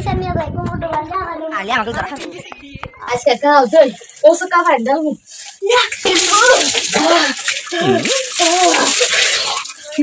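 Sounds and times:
water splashing onto body and floor: 3.4 - 10.0
person crying out: 7.1 - 9.1.

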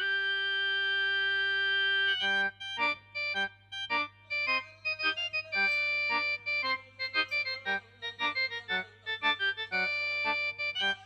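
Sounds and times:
electronic keyboard held note: 0.0 - 11.0.

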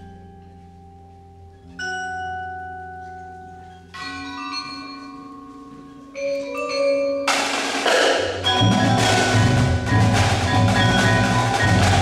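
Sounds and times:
mallet keyboards and chimes chords: 1.7 - 12.0.

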